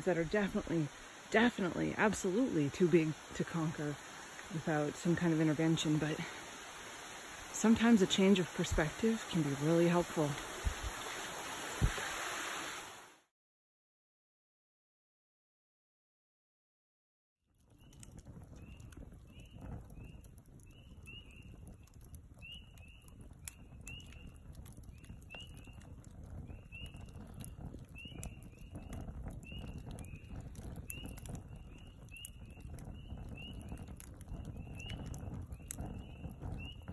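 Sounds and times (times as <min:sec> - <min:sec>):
wood fire crackling and popping: 0:00.1 - 0:11.0, 0:17.5 - 0:36.9.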